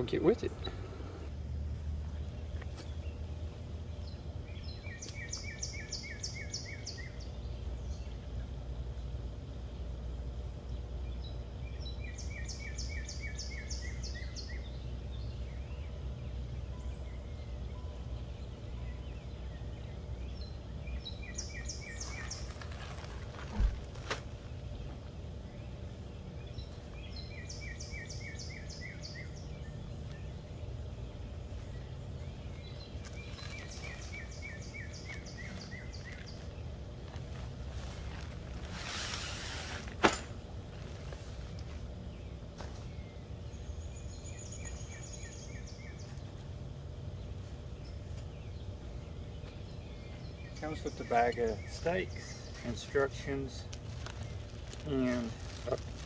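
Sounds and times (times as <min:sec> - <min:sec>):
low background rumble: 0:00.0 - 0:56.0
songbird singing rapid notes: 0:02.1 - 0:23.2, 0:24.4 - 0:39.8, 0:40.9 - 0:56.0
sharp thump: 0:40.0 - 0:40.4.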